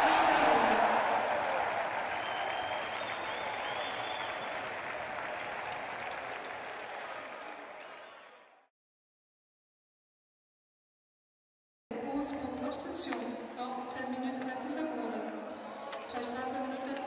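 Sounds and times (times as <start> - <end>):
crowd applauding: 0.0 - 8.7.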